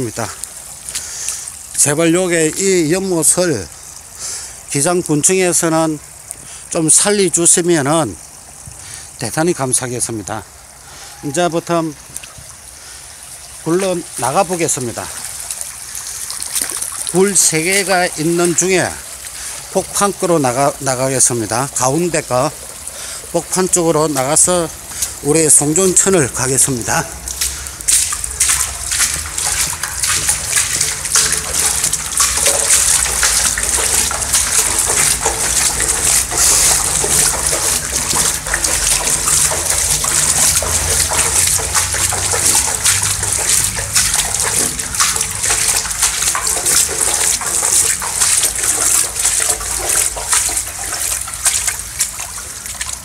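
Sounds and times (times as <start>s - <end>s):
water trickling and splashing: 0.0s - 53.0s.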